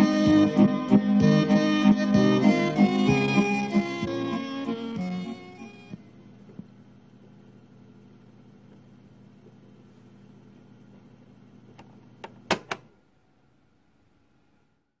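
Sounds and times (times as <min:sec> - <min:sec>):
tape hiss: 0:00.0 - 0:12.3
faint hum: 0:00.0 - 0:15.0.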